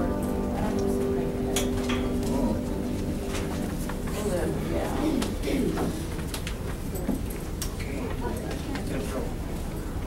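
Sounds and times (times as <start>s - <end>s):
held musical chord: 0.0s - 5.1s
low indistinct voices: 0.0s - 10.0s.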